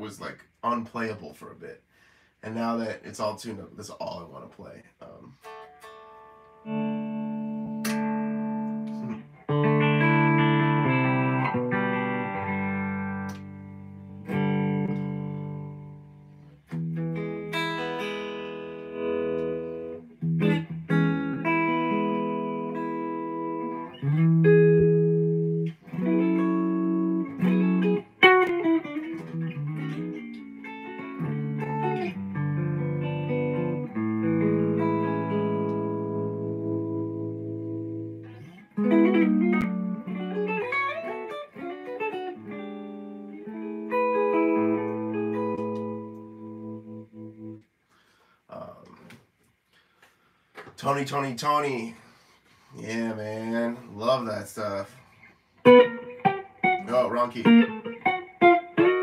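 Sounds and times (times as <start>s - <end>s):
electric guitar playing: 5.3s - 48.8s, 53.0s - 59.0s.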